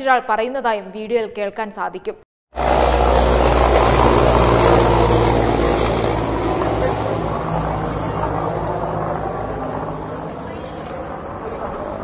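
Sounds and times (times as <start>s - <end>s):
helicopter passing overhead: 2.6s - 12.0s.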